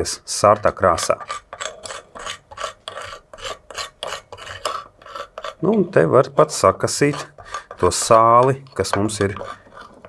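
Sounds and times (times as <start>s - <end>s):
metal spoon scraping salt crystals: 0.0s - 10.0s.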